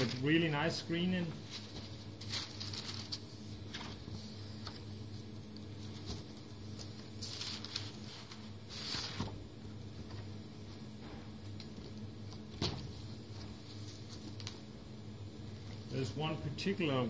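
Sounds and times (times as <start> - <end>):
steady low hum: 0.0 - 17.0
paper pages turning: 1.4 - 4.0, 5.8 - 9.3, 13.7 - 14.6.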